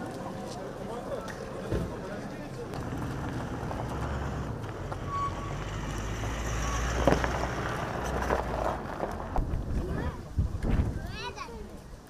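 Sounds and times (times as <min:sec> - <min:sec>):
motor vehicle rumbling: 0:00.0 - 0:11.3
outdoor background noise: 0:00.0 - 0:12.0.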